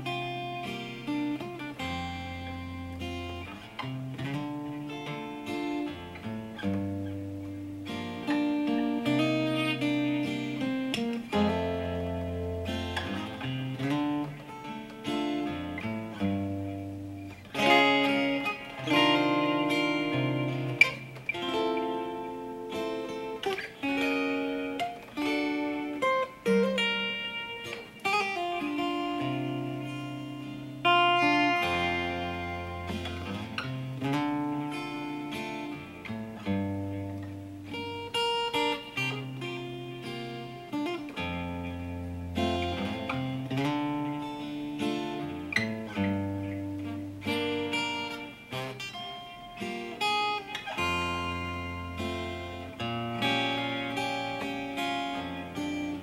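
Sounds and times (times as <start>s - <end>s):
fingerstyle acoustic guitar: 0.0s - 56.0s.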